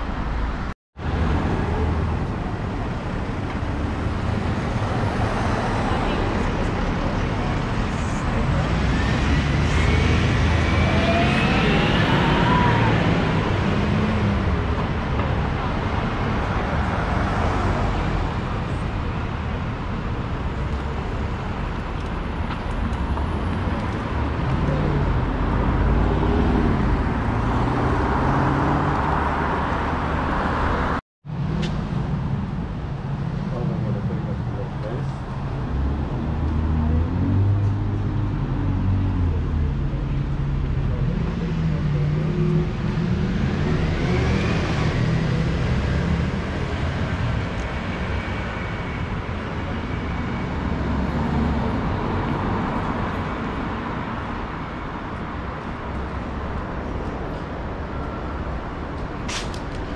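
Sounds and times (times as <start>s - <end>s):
cars passing with rumble: 0.0s - 59.9s
rising whine: 9.0s - 13.6s
people's voices passing: 33.3s - 37.5s.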